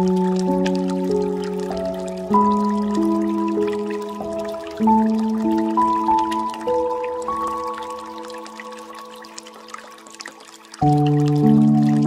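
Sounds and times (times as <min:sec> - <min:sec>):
soft ambient music: 0:00.0 - 0:12.0
water dripping and trickling: 0:00.0 - 0:12.0.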